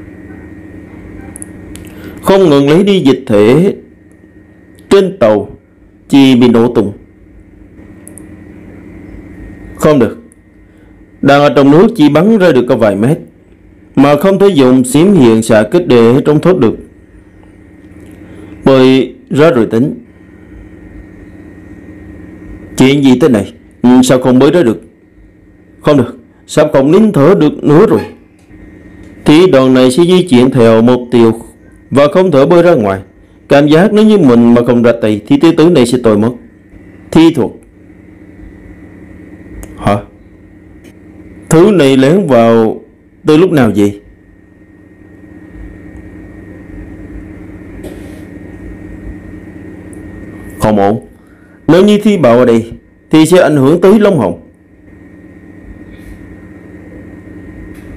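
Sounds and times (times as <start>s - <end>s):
low droning hum: 0.0s - 57.9s
faint high tone: 27.7s - 28.5s.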